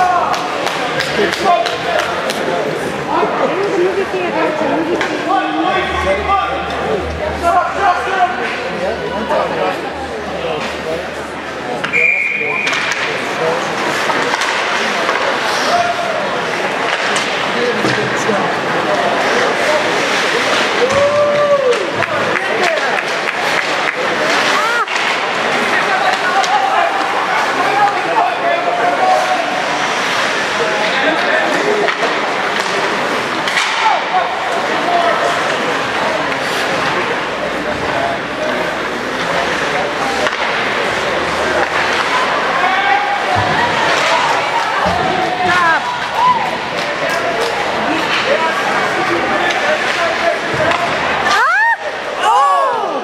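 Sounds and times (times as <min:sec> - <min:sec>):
spectators chattering and shouting: 0:00.0 - 0:53.0
knocks of sticks puck and boards: 0:00.2 - 0:02.5, 0:11.8 - 0:18.2, 0:18.9 - 0:28.1, 0:31.2 - 0:37.2, 0:37.8 - 0:51.7.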